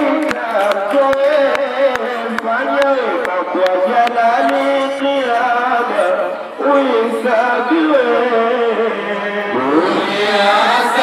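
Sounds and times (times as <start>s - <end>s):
group singing a chant unaccompanied: 5.4s - 11.0s.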